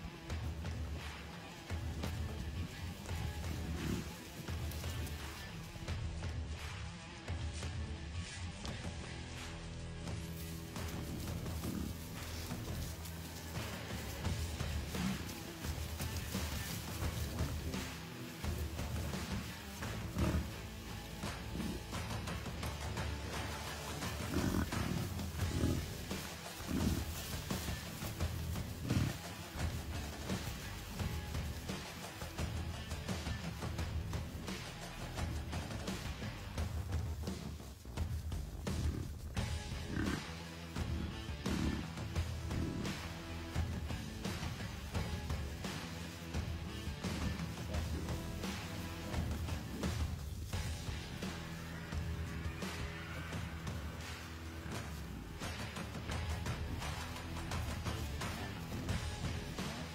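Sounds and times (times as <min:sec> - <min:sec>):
bison grunting: 0:00.0 - 0:06.7, 0:08.6 - 0:59.9
music playing: 0:00.0 - 0:59.9.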